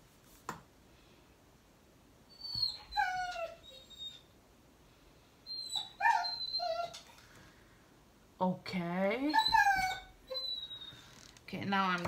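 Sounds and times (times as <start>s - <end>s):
dog whining: 2.3s - 4.3s, 5.5s - 7.2s, 9.3s - 11.1s.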